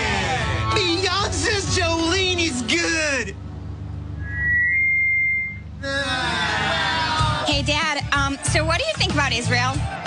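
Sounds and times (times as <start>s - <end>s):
high steady whistle-like tone: 4.2s - 5.7s.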